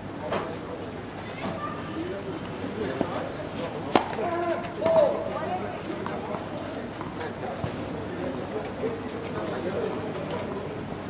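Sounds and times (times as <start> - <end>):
racket striking tennis ball: 3.9 - 5.0.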